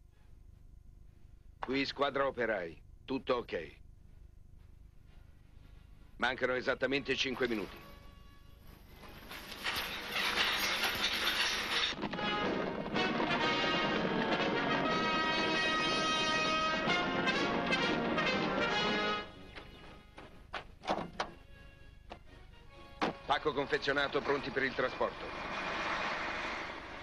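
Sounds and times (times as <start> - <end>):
brass band playing held chords: 12.2 - 19.4.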